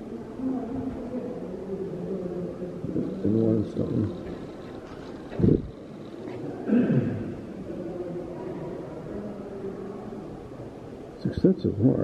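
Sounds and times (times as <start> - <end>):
faint voices murmuring: 0.0 - 12.0.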